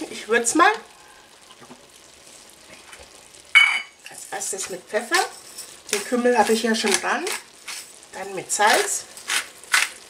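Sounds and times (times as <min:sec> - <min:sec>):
faint sizzling in a pot: 0:00.0 - 0:10.0.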